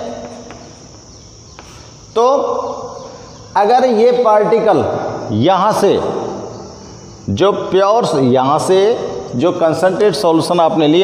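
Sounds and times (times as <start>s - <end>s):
high-pitched background hiss: 0.0s - 11.0s.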